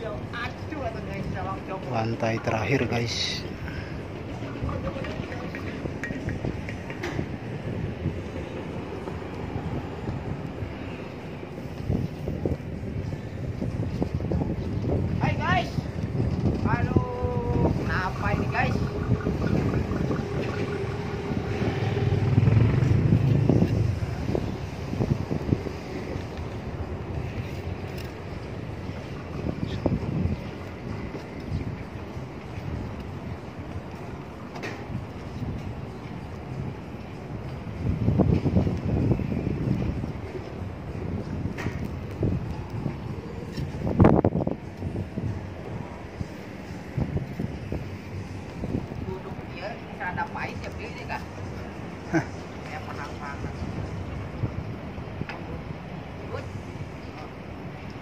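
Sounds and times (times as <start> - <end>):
low outdoor rumble: 0.0 - 58.0
wind buffeting microphone: 0.0 - 58.0.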